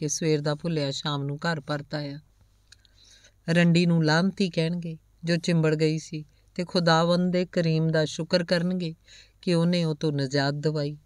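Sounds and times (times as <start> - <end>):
woman narrating: 0.0 - 2.2, 3.4 - 11.0.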